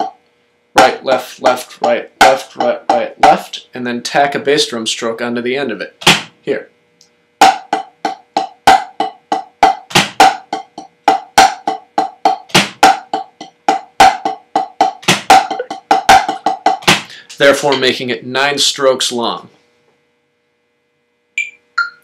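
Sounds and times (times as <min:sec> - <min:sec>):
drumsticks on practice pad: 0:00.8 - 0:03.5.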